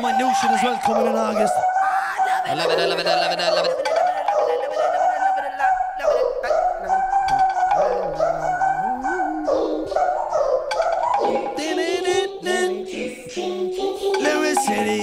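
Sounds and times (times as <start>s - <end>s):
sliding synth melody: 2.5s - 15.0s
gliding bass line: 6.1s - 11.0s.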